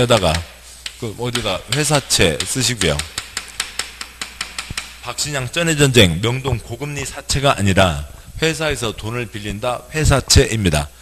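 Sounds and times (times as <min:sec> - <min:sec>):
chalk tapping and scraping: 0:00.0 - 0:05.2.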